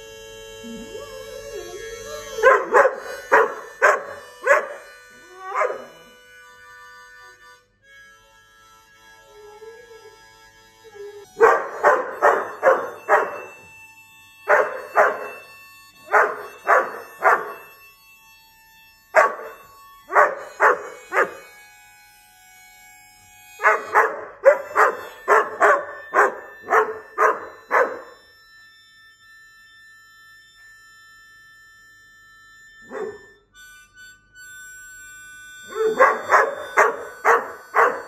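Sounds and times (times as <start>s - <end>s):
dog barking: 2.4s - 4.9s, 5.5s - 6.0s, 11.4s - 13.6s, 14.5s - 15.4s, 16.1s - 17.6s, 19.2s - 21.5s, 23.6s - 28.2s, 32.9s - 33.4s, 35.7s - 38.0s.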